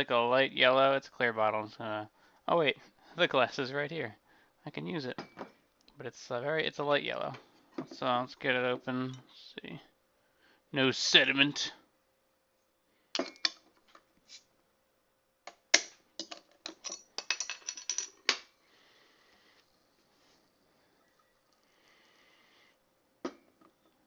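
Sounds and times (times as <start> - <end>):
faint hisses: 18.5 - 23.2.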